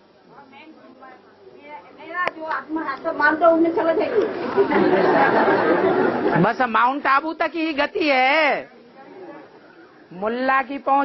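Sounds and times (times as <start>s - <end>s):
audience chatter: 0.0s - 6.6s, 8.7s - 10.1s.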